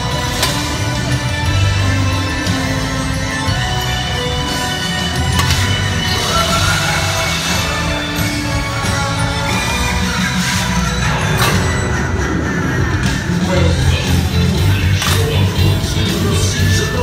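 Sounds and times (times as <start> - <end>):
parade music over loudspeakers: 0.0 - 17.0.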